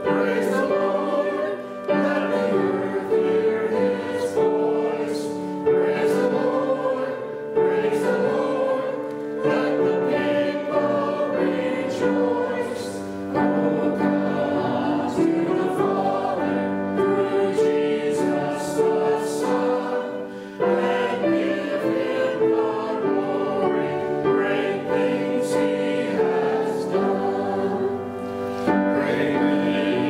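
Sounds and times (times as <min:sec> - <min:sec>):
congregation singing a hymn: 0:00.0 - 0:30.0.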